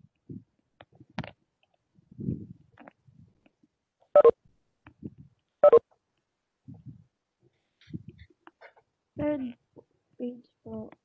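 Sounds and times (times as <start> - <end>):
short electronic beeps: 4.2 - 4.4, 5.6 - 5.8.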